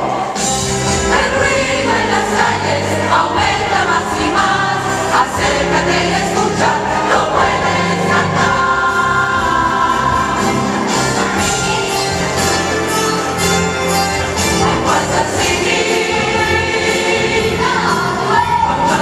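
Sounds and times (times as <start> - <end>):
instrumental accompaniment: 0.0 - 19.0
large choir singing: 0.0 - 19.0.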